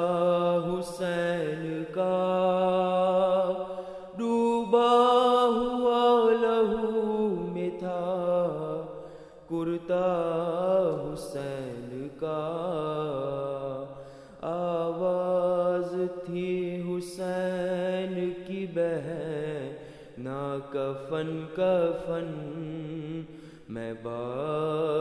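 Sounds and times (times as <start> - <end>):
man chanting a lament: 0.0 - 25.0.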